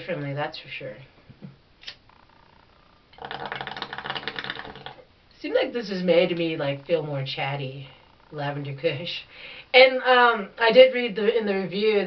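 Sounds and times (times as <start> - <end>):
water bubbling in a bong: 3.1 - 5.1.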